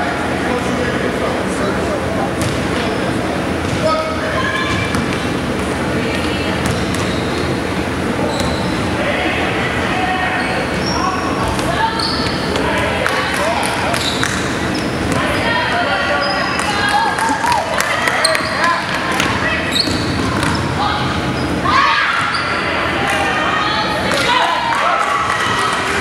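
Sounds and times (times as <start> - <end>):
sneakers squeaking: 2.3 - 9.0, 10.3 - 23.0
basketball bouncing: 2.4 - 2.7, 6.6 - 7.2, 19.1 - 20.6
people calling out: 15.2 - 26.0.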